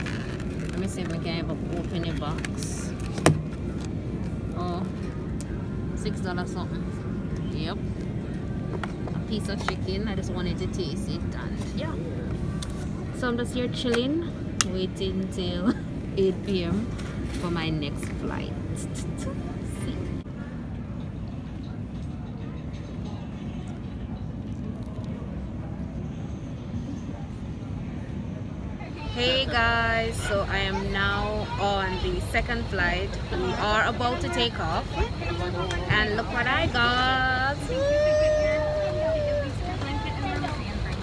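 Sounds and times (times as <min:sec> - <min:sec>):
airliner cabin rumble: 0:00.0 - 0:13.2
distant background noise: 0:00.0 - 0:41.0
faint voices: 0:00.0 - 0:41.0
ventilation hum: 0:00.0 - 0:41.0.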